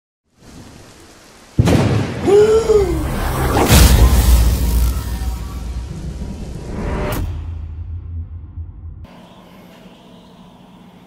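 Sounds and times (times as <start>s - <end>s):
thunder crack and rumble: 1.6s - 2.4s, 3.8s - 9.1s.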